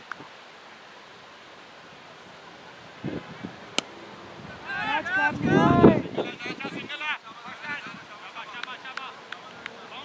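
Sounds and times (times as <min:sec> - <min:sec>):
faint wind: 0:00.0 - 0:10.0.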